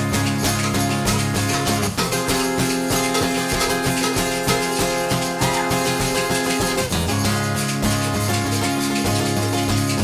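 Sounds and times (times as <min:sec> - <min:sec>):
acoustic guitar strumming: 0:00.0 - 0:10.0
shakers: 0:00.0 - 0:10.0.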